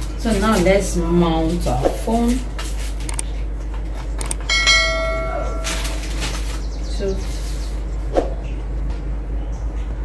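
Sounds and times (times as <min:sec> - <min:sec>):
quick clicks: 0:04.2 - 0:04.4
bell-like notification ding: 0:04.5 - 0:05.9.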